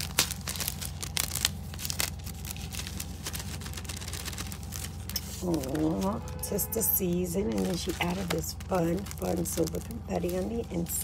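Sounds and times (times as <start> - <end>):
low hum: 0.0 - 11.0
paper and plastic crinkling: 0.0 - 11.0.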